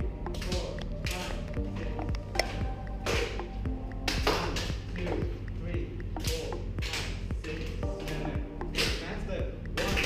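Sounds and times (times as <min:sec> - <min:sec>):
percussion music: 0:00.0 - 0:10.0.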